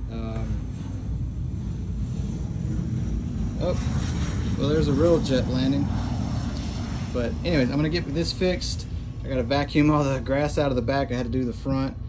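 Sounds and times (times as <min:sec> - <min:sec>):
jet aircraft landing rumble: 0:00.0 - 0:12.0.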